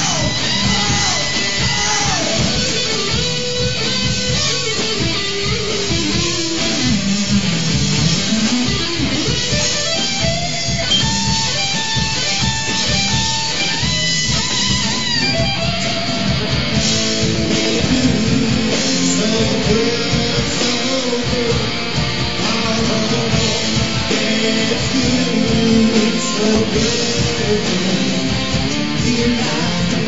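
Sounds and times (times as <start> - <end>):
bass guitar: 0.0 - 30.0
drums: 0.0 - 30.0
electric guitar lead line: 0.0 - 30.0.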